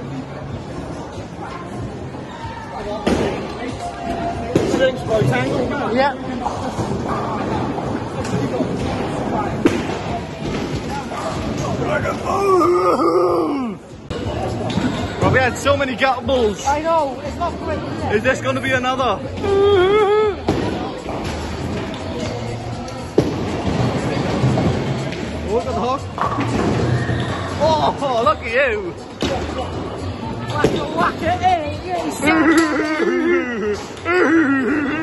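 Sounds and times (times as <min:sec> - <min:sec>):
crowd chatter: 0:00.0 - 0:35.0.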